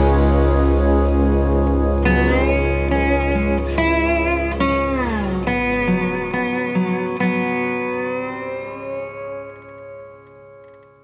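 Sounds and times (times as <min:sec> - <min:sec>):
country song chord ringing: 0:00.0 - 0:10.3.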